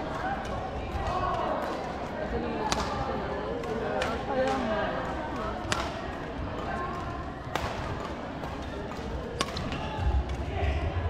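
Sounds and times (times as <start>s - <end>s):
many voices chattering: 0.0s - 11.0s
racket hitting shuttlecock: 2.6s - 10.4s.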